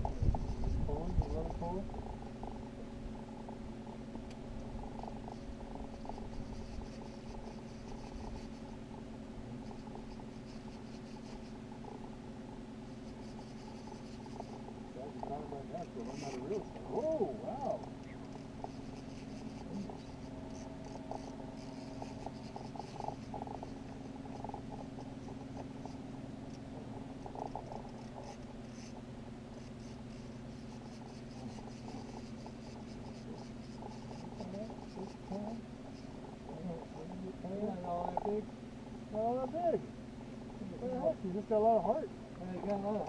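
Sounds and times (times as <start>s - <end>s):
outboard motor idling: 0.0s - 43.0s
faint voices: 14.9s - 18.3s.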